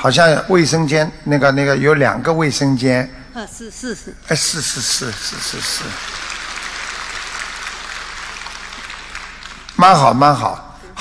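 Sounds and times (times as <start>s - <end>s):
audience applause: 4.8s - 10.1s.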